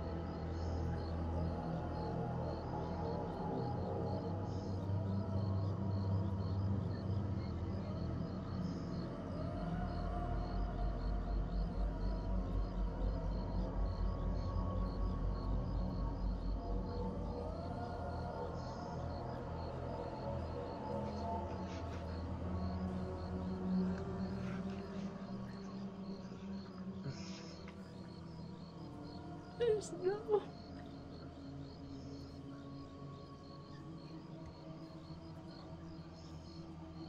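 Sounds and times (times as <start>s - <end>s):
crickets chirping: 0.0s - 37.0s
low horror soundtrack tones: 0.0s - 37.0s.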